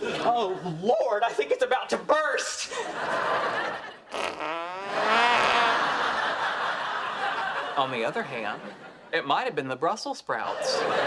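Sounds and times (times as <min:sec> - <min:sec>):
studio audience laughter: 0:02.7 - 0:09.1, 0:10.4 - 0:11.0
long wavering fart: 0:04.1 - 0:06.1.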